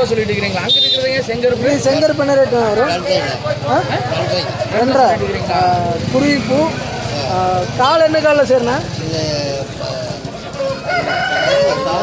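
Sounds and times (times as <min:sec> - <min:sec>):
rooster crowing: 0:10.5 - 0:12.0.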